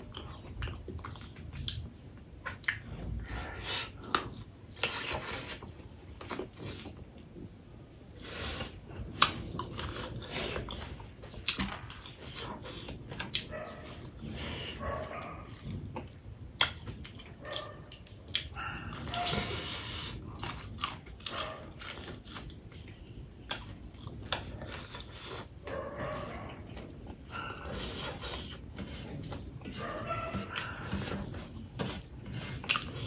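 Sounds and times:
person chewing: 0:00.0 - 0:07.2, 0:08.2 - 0:33.0
wet clicks and lip smacks: 0:16.6 - 0:16.9.

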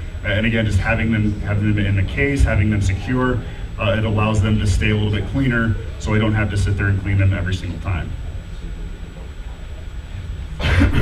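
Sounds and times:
low room hum: 0:00.0 - 0:11.0
man clearing his throat: 0:10.6 - 0:11.0.

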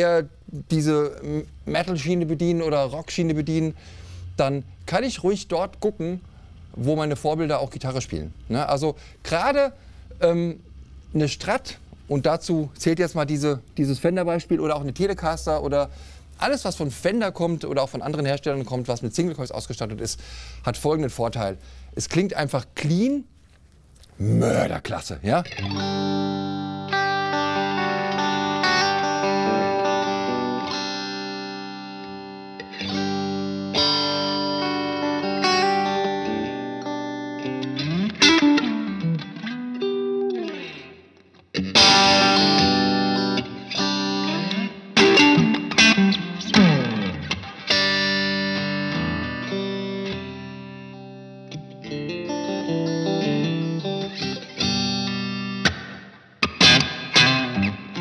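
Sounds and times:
clean electric guitar playing: 0:25.6 - 0:58.0.

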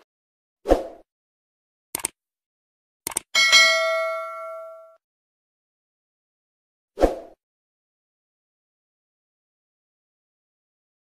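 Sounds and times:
short clicks: 0:01.9 - 0:02.2, 0:03.0 - 0:03.3
bright bell ding: 0:03.4 - 0:05.0.

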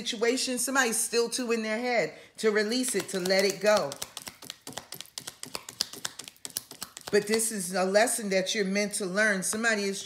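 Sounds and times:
cards shuffling: 0:02.9 - 0:07.4.

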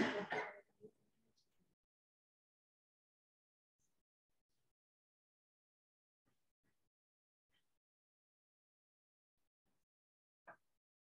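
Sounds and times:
person clearing throat: 0:00.0 - 0:00.6.

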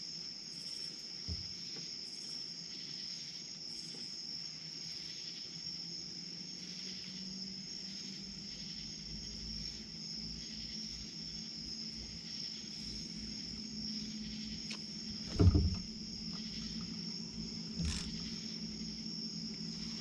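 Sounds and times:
crickets chirping: 0:00.0 - 0:20.0
low even hum: 0:08.0 - 0:20.0
loud dull thump: 0:15.2 - 0:16.0
small knock: 0:15.3 - 0:15.9.

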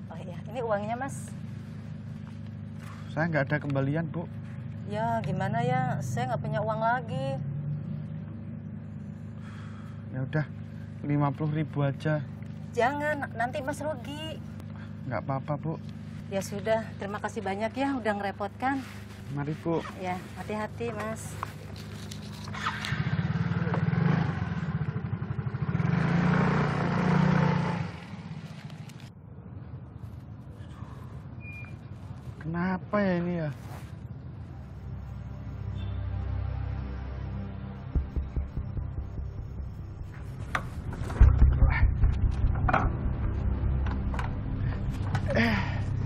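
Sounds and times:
steady low hum: 0:00.0 - 0:22.3, 0:34.0 - 0:46.0
small motorcycle engine revving: 0:22.5 - 0:28.4.

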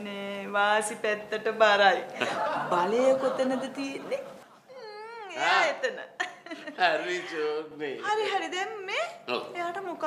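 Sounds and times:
people laughing: 0:02.2 - 0:04.4.

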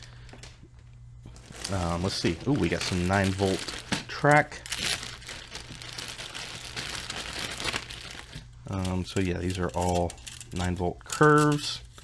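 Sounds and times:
plastic bag crinkling: 0:01.3 - 0:11.8.

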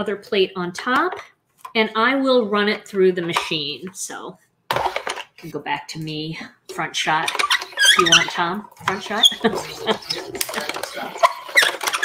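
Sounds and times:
objects clicking and knocking on desk: 0:04.7 - 0:05.5, 0:07.2 - 0:12.0.

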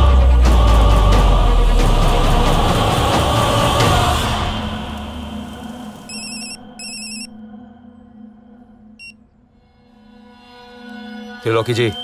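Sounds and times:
mobile phone warbling rings: 0:06.1 - 0:07.3
short beep: 0:06.1 - 0:07.4.

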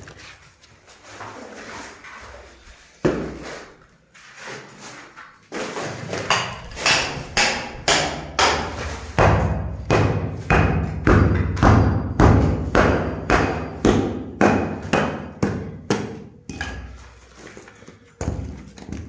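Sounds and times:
hammer breaking concrete: 0:06.3 - 0:16.9.

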